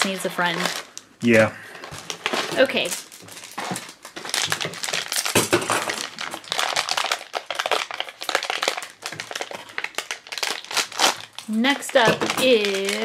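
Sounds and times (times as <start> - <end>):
plastic bag crinkling: 0.0 - 1.1, 1.7 - 13.0.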